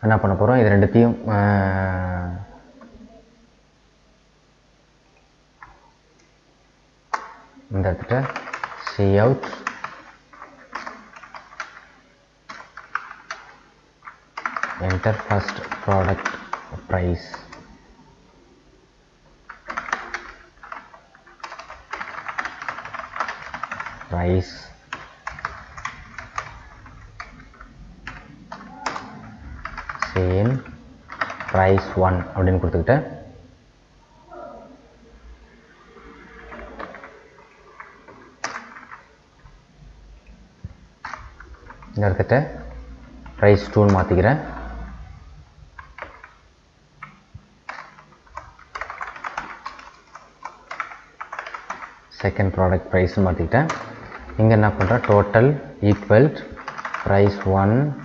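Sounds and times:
keyboard typing clicks: 7.1 - 7.4, 8.2 - 17.8, 19.5 - 24.1, 24.9 - 32.4, 36.0 - 39.1, 40.6 - 42.0, 45.7 - 46.4, 47.0 - 52.3, 53.5 - 58.0.

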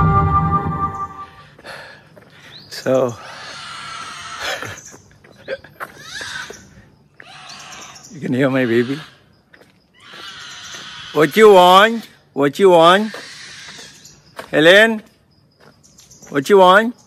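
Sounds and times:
soft ambient music: 0.0 - 1.6
small child crying and squealing: 5.8 - 6.6, 13.0 - 14.0.

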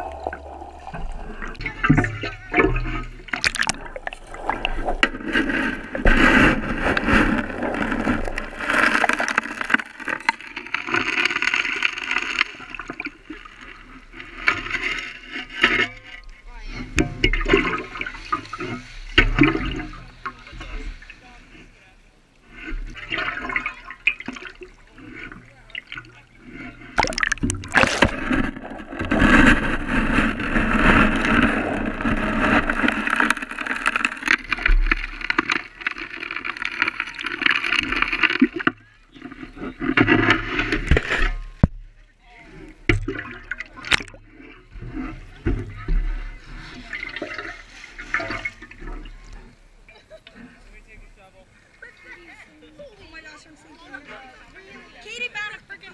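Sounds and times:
water sloshing and gurgling: 0.0 - 55.9.

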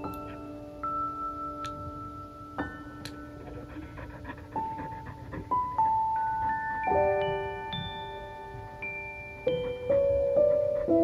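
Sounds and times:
chiming music notes: 0.0 - 3.9, 5.6 - 11.0
dog panting fast: 3.4 - 6.2, 9.5 - 11.0.

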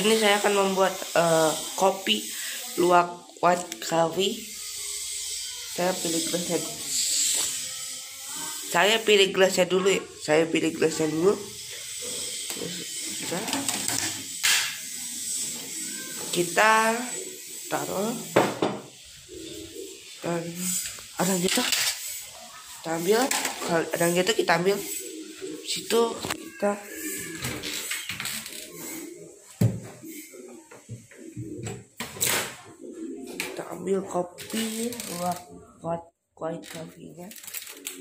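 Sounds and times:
low talking close to microphone: 33.6 - 37.3.

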